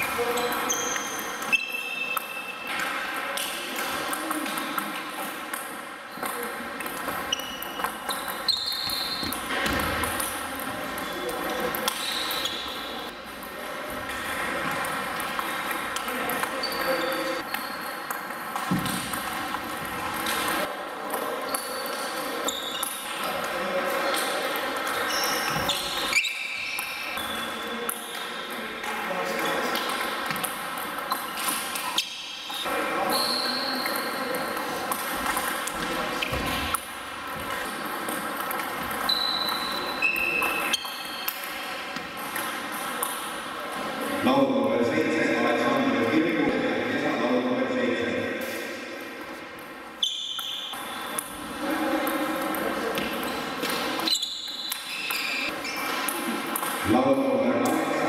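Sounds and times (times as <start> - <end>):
people talking: 0.0 - 1.5, 2.8 - 5.0, 10.5 - 17.5, 27.1 - 30.0, 43.8 - 48.6, 51.4 - 54.1, 56.8 - 58.0
table tennis balls clicking: 33.8 - 43.4.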